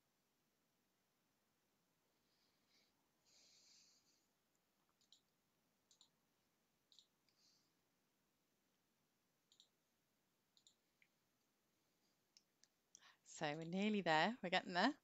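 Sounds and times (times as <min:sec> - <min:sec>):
computer mouse clicks: 0:04.9 - 0:05.3, 0:05.9 - 0:06.2, 0:06.9 - 0:07.4, 0:09.5 - 0:09.8, 0:10.5 - 0:11.1.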